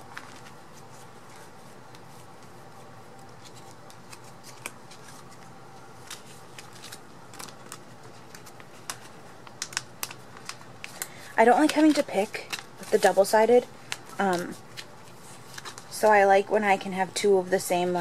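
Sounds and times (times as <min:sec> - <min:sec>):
plastic sleeves rustling: 0:00.0 - 0:18.0.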